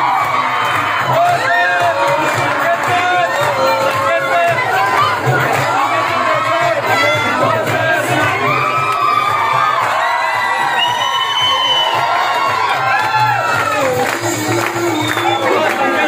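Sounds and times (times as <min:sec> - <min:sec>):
crowd cheering and shouting: 0:00.0 - 0:16.0
high whoops: 0:08.4 - 0:14.1.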